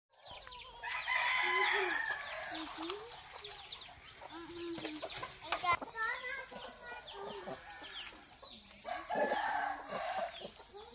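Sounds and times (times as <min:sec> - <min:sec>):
rooster crowing: 0:00.8 - 0:02.7, 0:08.9 - 0:10.3.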